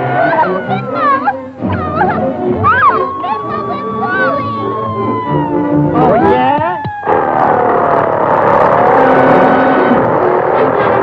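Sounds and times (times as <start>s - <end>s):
orchestral cartoon music: 0.0s - 6.6s
long falling tone: 1.8s - 10.7s.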